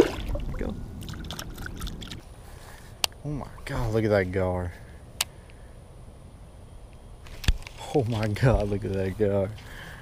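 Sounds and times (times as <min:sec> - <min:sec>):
water splashing and trickling: 0:00.0 - 0:02.2.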